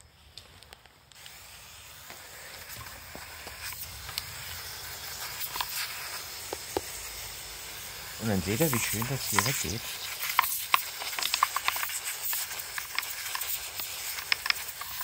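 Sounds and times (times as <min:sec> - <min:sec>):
spray clicking on parts: 0:00.3 - 0:15.0
pressure sprayer hissing: 0:01.1 - 0:15.0.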